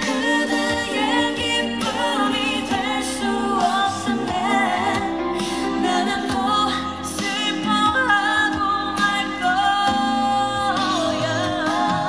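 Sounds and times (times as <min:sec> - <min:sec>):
musical accompaniment: 0:00.0 - 0:12.0
woman singing into microphone: 0:00.0 - 0:12.0.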